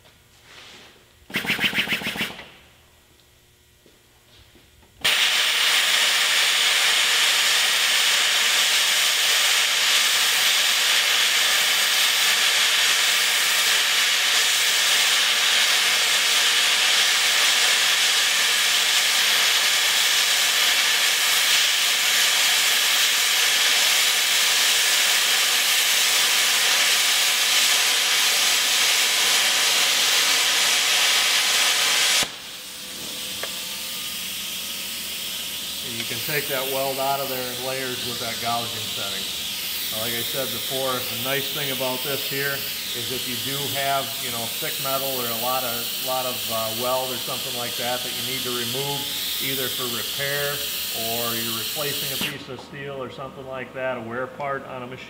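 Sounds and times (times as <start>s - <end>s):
plasma torch hissing: 5.0s - 53.2s.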